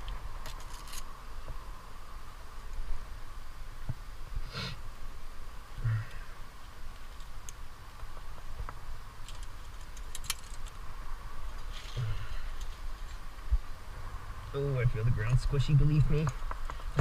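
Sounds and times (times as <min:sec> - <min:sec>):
metal climbing gear clinking: 0:00.0 - 0:01.1, 0:09.2 - 0:10.8.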